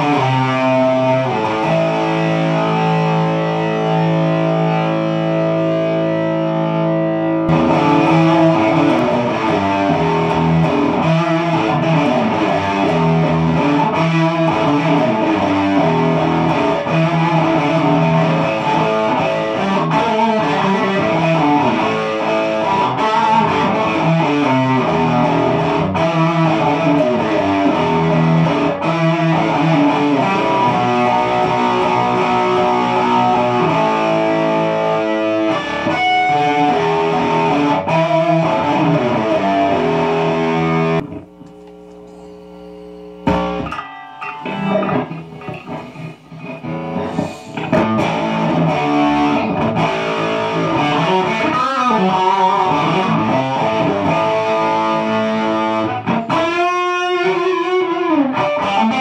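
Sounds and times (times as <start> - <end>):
electric guitar through an amplifier: 0.0 - 59.0.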